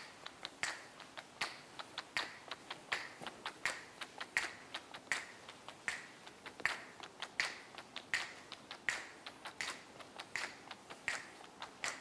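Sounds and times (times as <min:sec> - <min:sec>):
faint irregular footsteps: 0:00.0 - 0:12.0.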